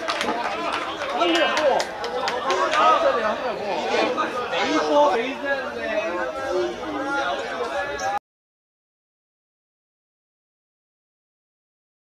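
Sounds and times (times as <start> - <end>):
indistinct chatter: 0.0 - 8.2.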